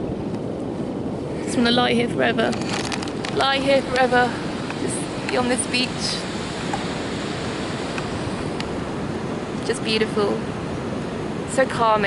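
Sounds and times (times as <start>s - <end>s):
sea surf washing onto beach: 0.0s - 12.0s.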